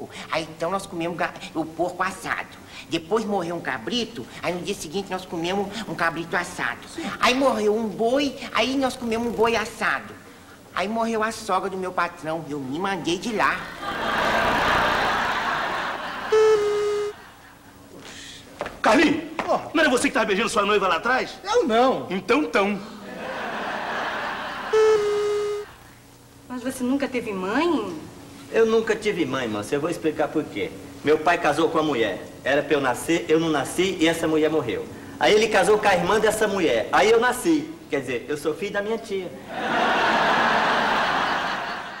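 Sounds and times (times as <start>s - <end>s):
audience laughter: 13.6s - 17.7s, 23.0s - 25.0s, 39.5s - 42.0s
horn toot: 16.3s - 17.2s, 24.7s - 25.7s.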